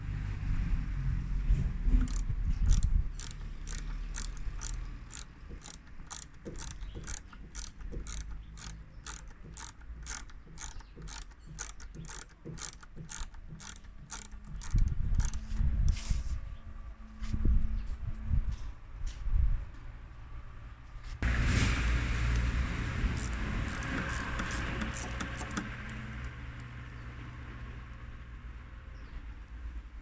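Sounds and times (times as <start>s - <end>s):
ratchet wrench clicking: 2.0s - 16.2s, 23.1s - 26.8s.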